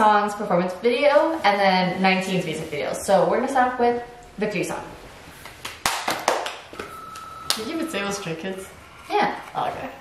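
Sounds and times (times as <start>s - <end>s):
steady high beep: 6.7s - 8.6s.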